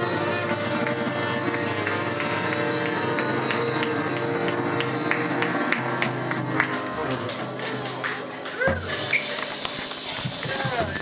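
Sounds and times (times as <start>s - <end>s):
voices talking and laughing: 5.2s - 11.0s.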